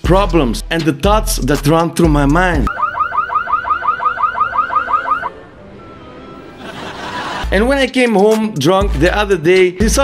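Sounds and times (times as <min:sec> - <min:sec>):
car alarm chirping: 0:02.7 - 0:06.5.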